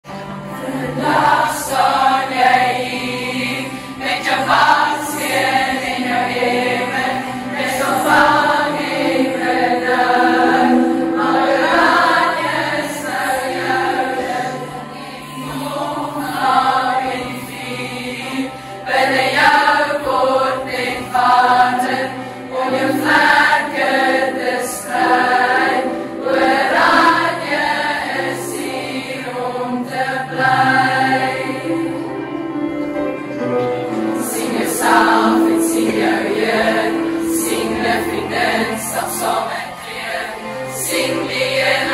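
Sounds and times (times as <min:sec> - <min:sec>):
girls choir singing: 0:00.0 - 0:41.9.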